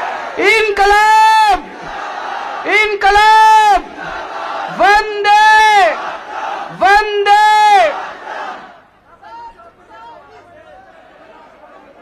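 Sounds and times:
crowd roaring: 0:00.0 - 0:09.0
man shouting into microphone: 0:00.4 - 0:01.8, 0:02.6 - 0:03.9, 0:04.7 - 0:06.0, 0:06.7 - 0:08.0, 0:09.1 - 0:10.8.

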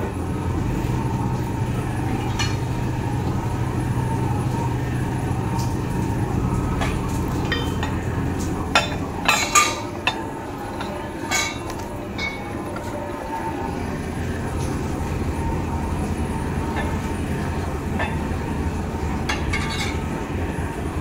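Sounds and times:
low machine rumble: 0:00.0 - 0:21.0.

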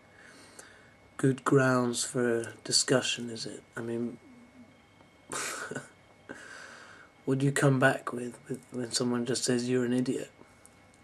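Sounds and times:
man coughing: 0:05.3 - 0:05.9.

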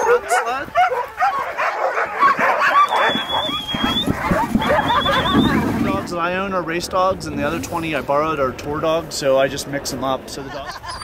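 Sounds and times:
dogs barking and yipping: 0:00.0 - 0:06.0, 0:10.7 - 0:11.0
dog whining: 0:02.0 - 0:05.6.

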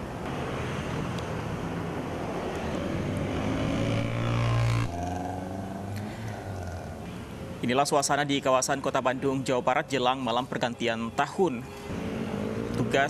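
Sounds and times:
cars passing: 0:00.0 - 0:13.0
engine climbing in pitch: 0:02.6 - 0:07.1.

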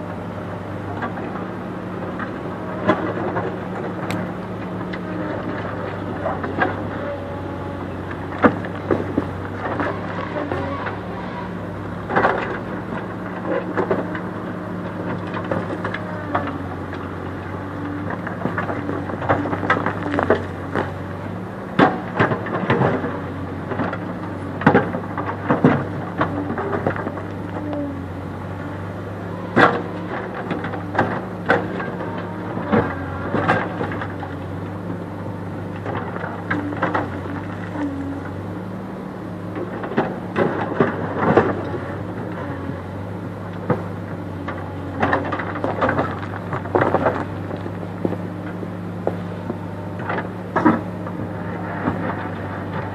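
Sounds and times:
diesel engine under load: 0:00.0 - 0:52.9.

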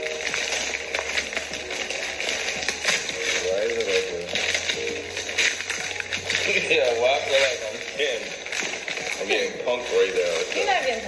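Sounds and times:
wrapping paper crinkling: 0:00.0 - 0:11.0.

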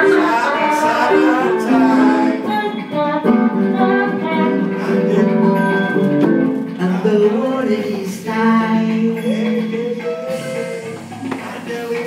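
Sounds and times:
man singing into microphone: 0:00.0 - 0:03.0, 0:04.5 - 0:05.9, 0:06.7 - 0:12.0
acoustic guitar: 0:00.0 - 0:12.0.

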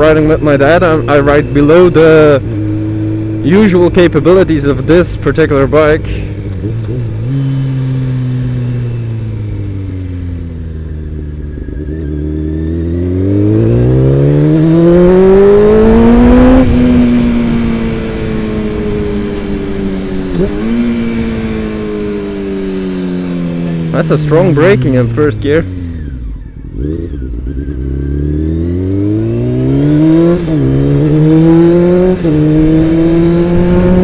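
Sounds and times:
motorcycle engine revving: 0:00.0 - 0:34.0.

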